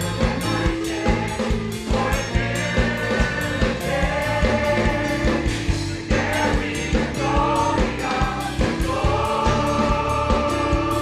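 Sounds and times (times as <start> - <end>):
mixed choir singing gospel: 0.0 - 11.0
steady accompanying beat: 0.0 - 11.0.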